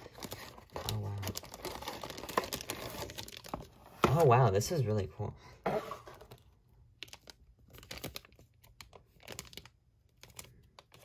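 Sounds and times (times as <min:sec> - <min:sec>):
plastic wrapping crinkling: 0:00.0 - 0:04.3, 0:06.0 - 0:11.0.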